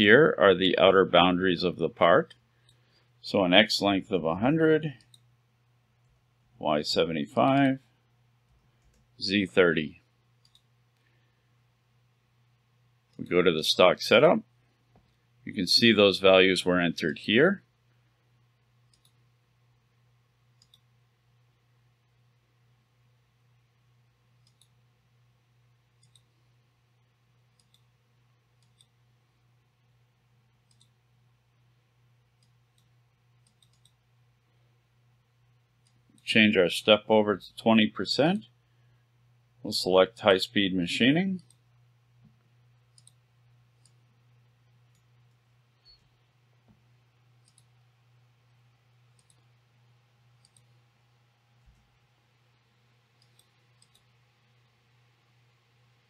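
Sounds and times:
low steady hum: 0:00.0 - 0:56.0
faint computer mouse clicks: 0:10.4 - 0:11.1, 0:18.9 - 0:19.2, 0:20.6 - 0:20.9, 0:24.4 - 0:24.8, 0:26.0 - 0:26.3, 0:27.6 - 0:27.9, 0:28.6 - 0:29.0, 0:30.7 - 0:31.0, 0:32.4 - 0:34.0, 0:42.2 - 0:43.2, 0:43.8 - 0:44.0, 0:47.4 - 0:47.7, 0:49.1 - 0:49.5, 0:50.4 - 0:50.7, 0:53.2 - 0:54.1.

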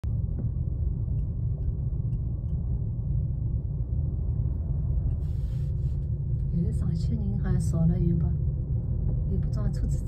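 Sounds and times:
gondola cabin rumble: 0:00.0 - 0:10.0.

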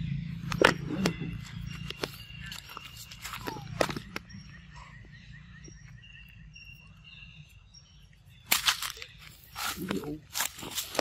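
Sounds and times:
high bird calls: 0:00.0 - 0:11.0.

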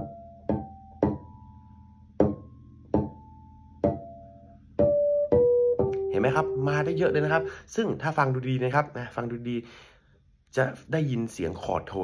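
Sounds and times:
bass guitar harmonics: 0:00.0 - 0:09.4.

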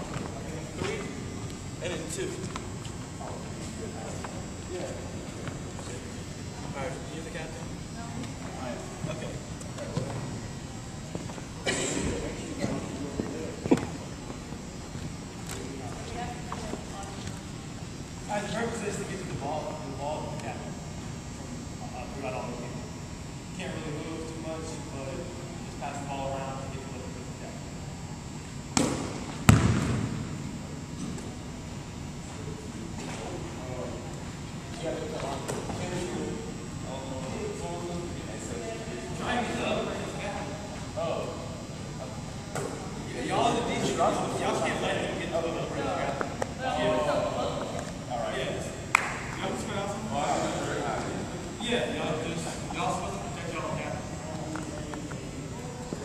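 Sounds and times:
murmur of voices: 0:00.0 - 0:28.8, 0:30.3 - 0:56.0
low room hum: 0:00.0 - 0:56.0
basketball bouncing on hardwood floor: 0:29.5 - 0:30.0.

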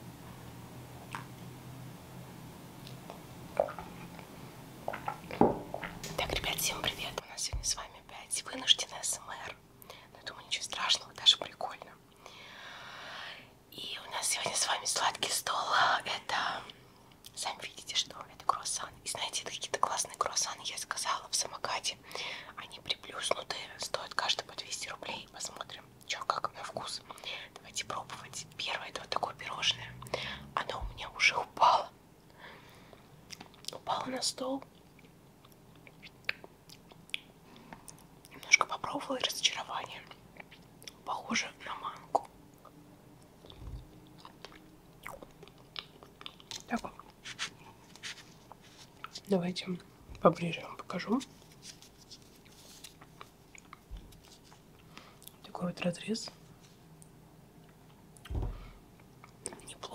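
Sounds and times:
person chewing pastry: 0:43.3 - 0:49.2, 0:51.4 - 0:55.4.

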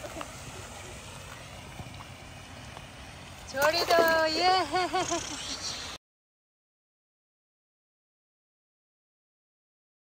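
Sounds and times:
even hiss: 0:00.0 - 0:06.0.

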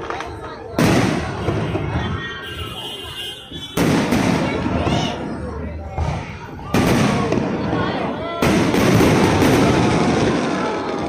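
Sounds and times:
aerial fireworks bursting: 0:00.0 - 0:11.0
fireworks crackling: 0:00.0 - 0:11.0.

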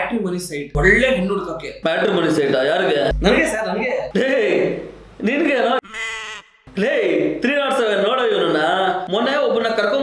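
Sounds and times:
person speaking: 0:00.7 - 0:05.8
wavering bleating voice: 0:05.8 - 0:06.5.

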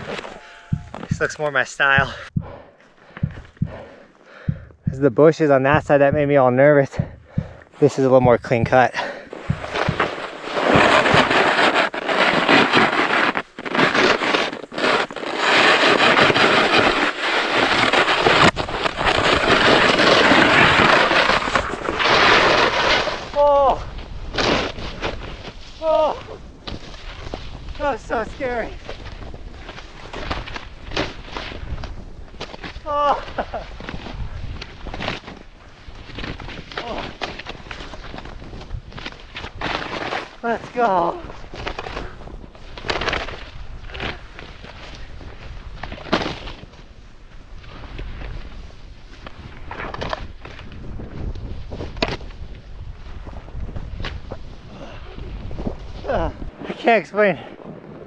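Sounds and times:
snowboard carving through powder: 0:07.9 - 0:58.0
wind rumble on microphone: 0:23.0 - 0:39.7, 0:41.0 - 0:56.8
wind rushing over microphone: 0:47.0 - 0:58.0.

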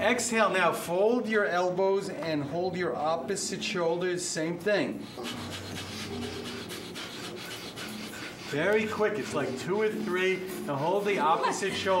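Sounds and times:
people breathing rapidly through nose: 0:04.9 - 0:12.0.

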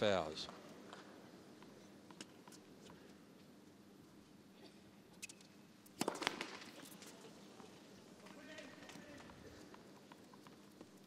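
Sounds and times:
tennis serve crack: 0:05.2 - 0:07.0
tennis ball impacts: 0:05.9 - 0:06.8.

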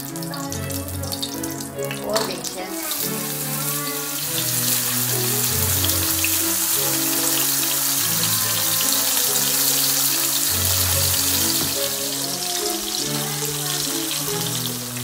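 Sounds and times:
background music with held notes: 0:00.0 - 0:15.0
tofu sizzling in oil: 0:00.0 - 0:15.0.

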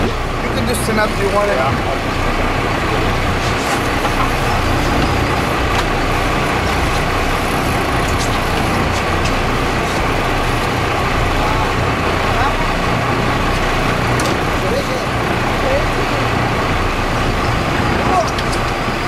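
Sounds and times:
boat engine droning: 0:00.0 - 0:19.0
rushing water: 0:00.0 - 0:19.0
wind: 0:00.0 - 0:19.0.

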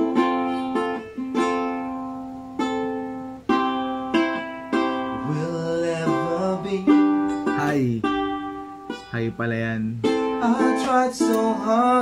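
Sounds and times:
ukulele strumming chords: 0:00.0 - 0:12.0
man singing: 0:05.1 - 0:08.1, 0:09.1 - 0:12.0.

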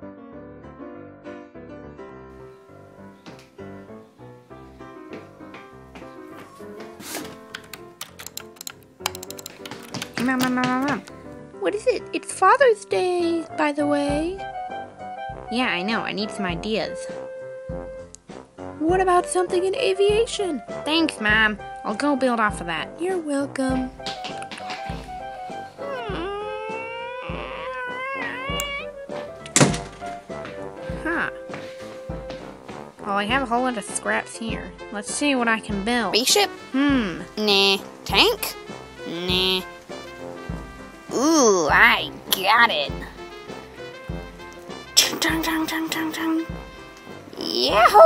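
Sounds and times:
background music: 0:00.0 - 0:48.0
keyboard key clicks: 0:07.5 - 0:10.6
door shutting thunk: 0:29.5 - 0:30.2.

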